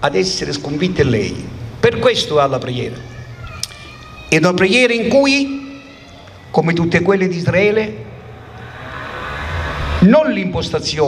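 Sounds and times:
road vehicle passing: 7.8 - 10.9.

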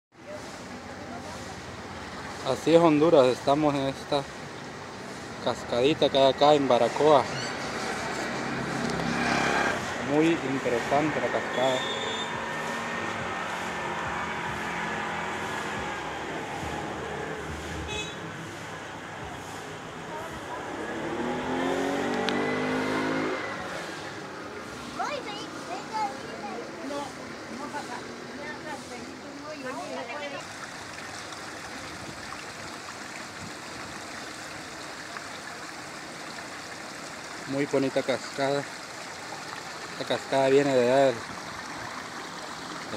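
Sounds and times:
stream rushing over rocks: 0.2 - 42.9
people's voices: 19.1 - 30.5.

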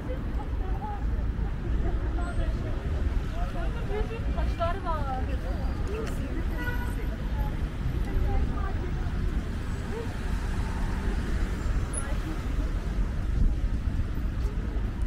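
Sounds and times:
cars passing: 0.0 - 15.0
passers-by talking: 0.0 - 15.0.

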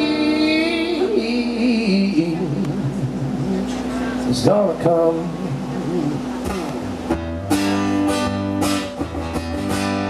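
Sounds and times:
man singing wordless run: 0.0 - 6.3
acoustic guitar chord: 0.0 - 10.0.

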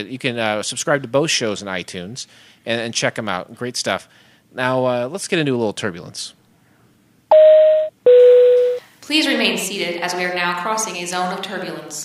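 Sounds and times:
two-tone electronic chime: 7.3 - 8.8.

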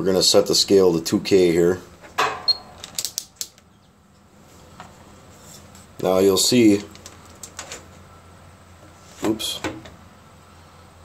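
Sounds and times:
faint handling noise: 6.6 - 8.0.

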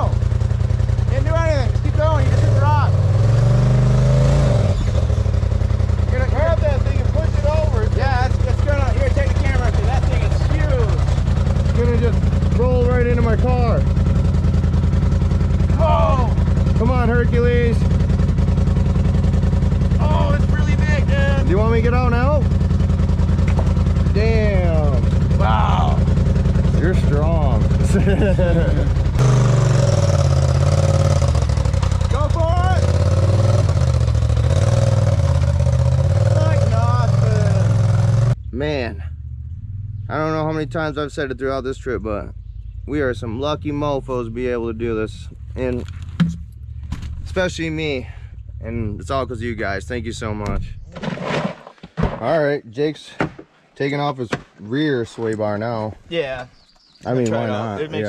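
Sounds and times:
voices: 0.0 - 0.3, 1.0 - 3.0, 5.8 - 29.4, 31.9 - 33.6, 36.2 - 39.2, 40.0 - 46.0, 47.2 - 50.8, 52.2 - 58.0
vehicle engine idling: 0.0 - 50.8.

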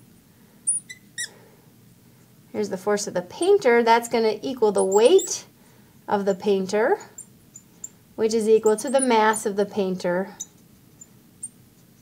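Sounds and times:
marker squeaking on glass: 0.7 - 1.4, 4.8 - 5.4, 8.6 - 9.4, 10.4 - 12.0.

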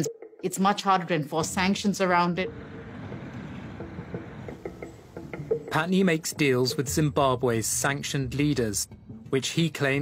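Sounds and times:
low hazy drone music: 1.5 - 9.4.

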